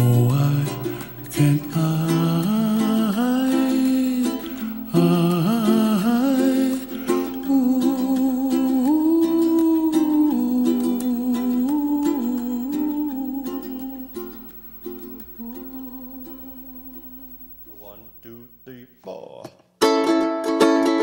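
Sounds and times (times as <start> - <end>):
hummed melody: 0.0 - 18.9
plucked string accompaniment: 19.8 - 21.0.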